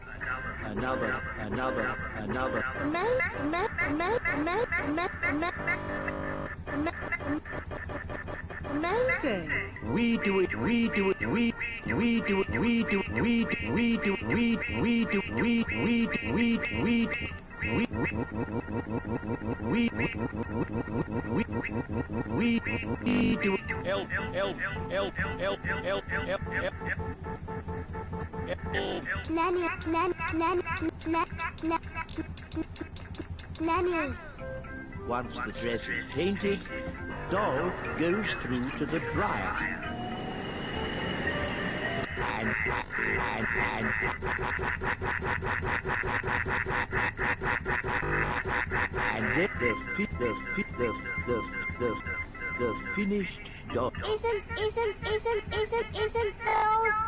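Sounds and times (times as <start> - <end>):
music: 0.0 - 30.0, 33.6 - 43.2, 48.0 - 53.6
stuttering cartoon voice loop: 0.0 - 40.6, 41.6 - 57.0.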